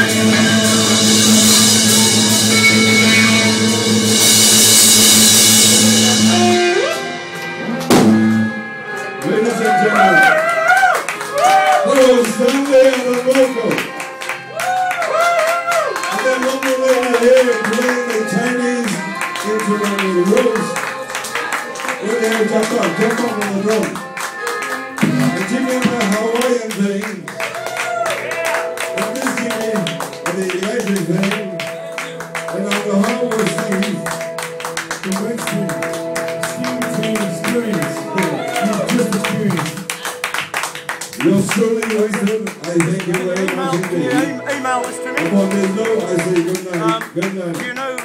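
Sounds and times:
man singing: 0.0 - 2.1, 16.2 - 24.0, 25.2 - 26.7
final accented band hit: 0.0 - 47.2
blues band playing: 0.0 - 48.0.

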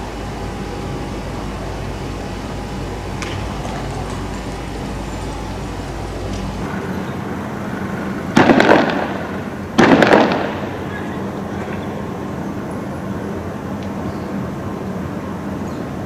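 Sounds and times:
loud bangs: 1.6 - 11.9.

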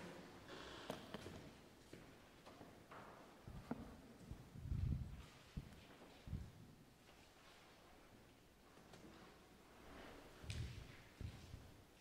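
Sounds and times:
soft footsteps: 9.8 - 11.8.

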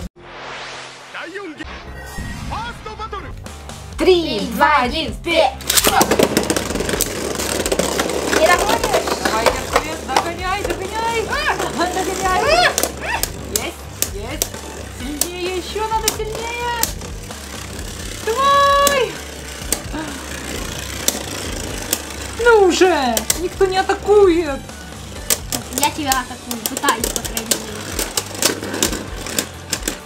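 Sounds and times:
background music: 0.0 - 30.0
spinning tops clicking: 5.6 - 30.0.

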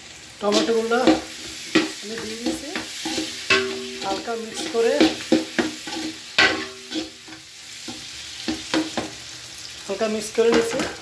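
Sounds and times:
low steady sizzle: 0.0 - 11.0
spoon scraping in metal pot: 0.5 - 7.4.

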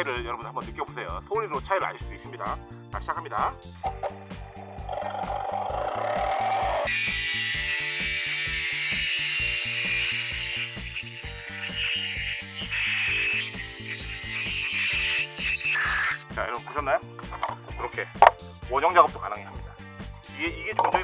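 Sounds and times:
background music: 0.0 - 21.0
jigsaw cutting board: 4.8 - 16.3.

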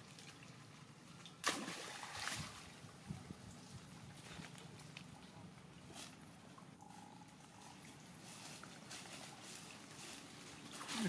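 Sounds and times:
water splashing: 0.0 - 3.0.

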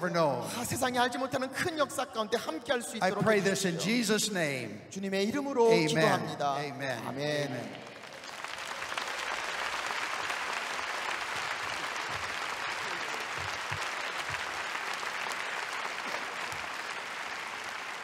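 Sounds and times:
large audience applauding: 7.4 - 18.0.

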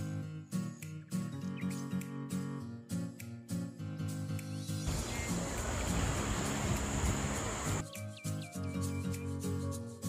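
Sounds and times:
high-pitched hiss: 4.9 - 7.8
small waves washing: 4.9 - 7.8
wind buffeting microphone: 4.9 - 7.8.

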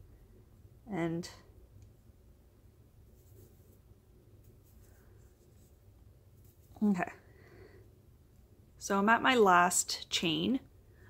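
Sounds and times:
low room hum: 0.0 - 11.0
yarn rustling on crochet hook: 2.9 - 7.2.

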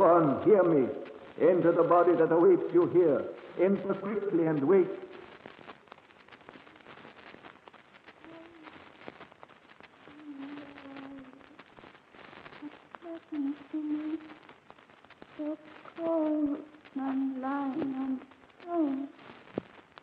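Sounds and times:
recording crackle: 0.0 - 20.0.

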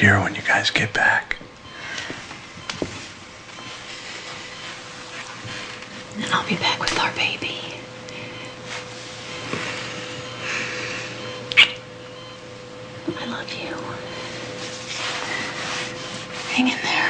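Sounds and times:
electrical hum: 0.0 - 17.0
soft whispering: 6.5 - 7.9, 13.2 - 14.1.

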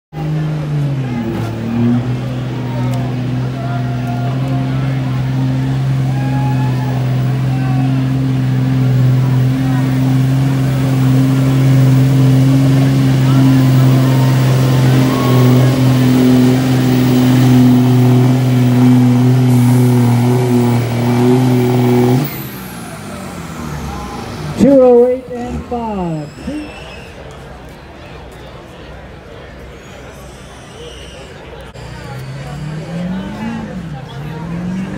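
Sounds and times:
diesel engine at full throttle: 0.1 - 34.9.

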